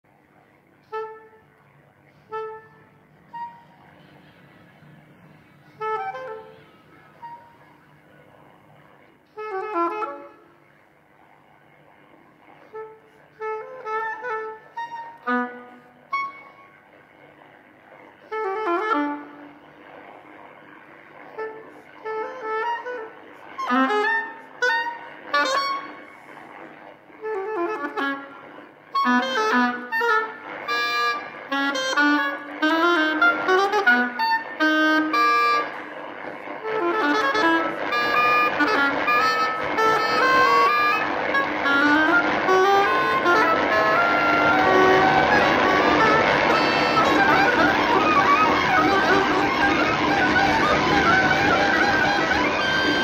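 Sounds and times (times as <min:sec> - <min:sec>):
oboe melody: 0:00.1 - 0:53.0.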